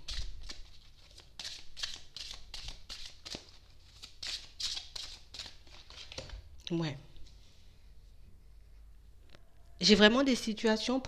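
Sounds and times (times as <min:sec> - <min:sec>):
cards being shuffled: 0:00.0 - 0:06.4.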